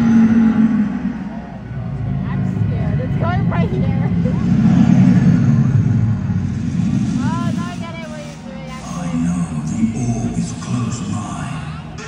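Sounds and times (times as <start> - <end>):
vehicle engine rumbling: 0.0 - 12.0
voices: 0.0 - 12.0.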